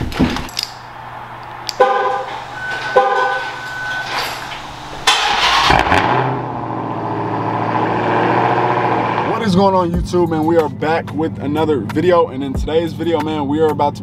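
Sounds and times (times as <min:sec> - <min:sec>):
car horn chirps: 0:01.7 - 0:05.3
engine starting and idling: 0:02.1 - 0:09.3.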